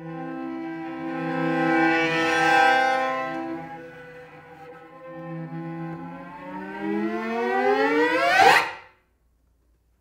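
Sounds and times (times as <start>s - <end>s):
cello glissando: 0.0s - 8.7s.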